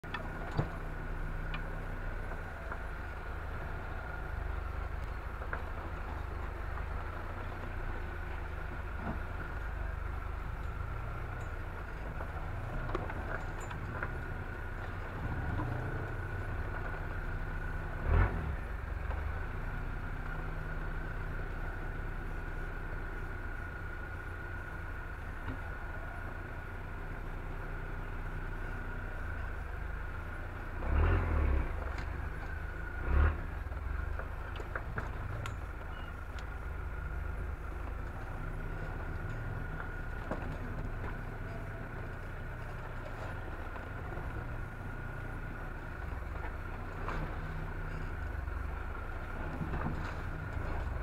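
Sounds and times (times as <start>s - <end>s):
off-road vehicle engine running: 0.0s - 51.0s.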